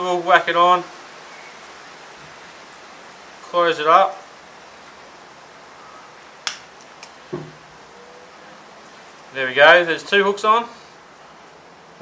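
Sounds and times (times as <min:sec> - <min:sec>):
steady low hiss: 0:00.0 - 0:12.0.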